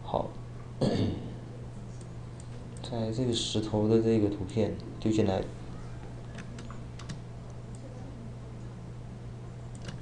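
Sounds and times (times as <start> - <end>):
steady low hum: 0.0 - 10.0
keyboard and mouse clicks: 9.7 - 10.0.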